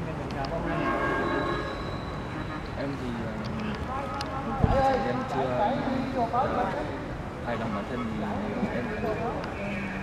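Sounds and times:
horn blast: 0:00.7 - 0:02.6.

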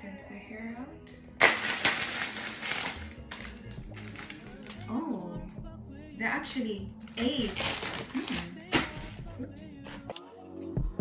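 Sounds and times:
background music: 0:00.0 - 0:11.0
plastic packaging crinkling: 0:01.4 - 0:04.9, 0:07.1 - 0:09.2.

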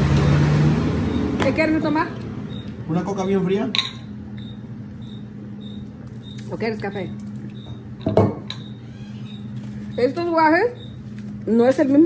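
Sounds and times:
steady low hum: 0:00.9 - 0:12.0.

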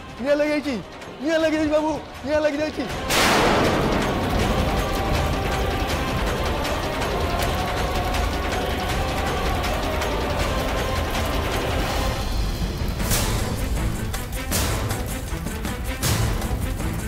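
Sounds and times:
background music: 0:00.0 - 0:17.0
fire crackling: 0:00.1 - 0:17.0.

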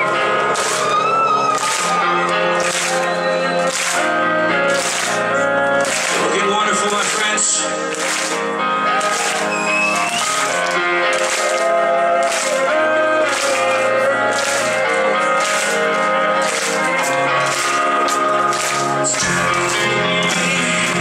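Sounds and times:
sustained keyboard chords: 0:00.0 - 0:21.0.

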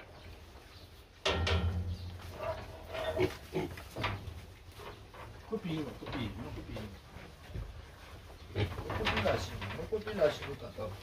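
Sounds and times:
piglets grunting: 0:02.5 - 0:04.0.

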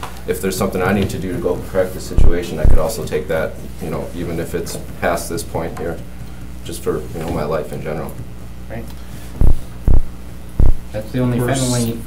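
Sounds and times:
low electrical hum: 0:00.0 - 0:12.0
people talking: 0:00.3 - 0:06.0, 0:06.7 - 0:08.9, 0:11.0 - 0:12.0
dull low thumps: 0:02.2 - 0:03.0, 0:09.4 - 0:10.9.

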